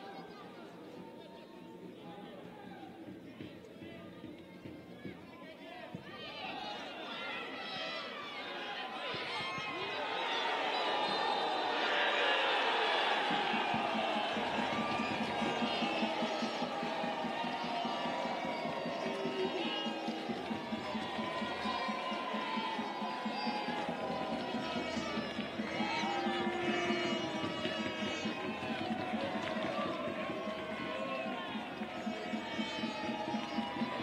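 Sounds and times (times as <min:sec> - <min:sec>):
crowd cheering and shouting: 0:02.4 - 0:34.0
steady rhythmic beat: 0:10.9 - 0:34.0.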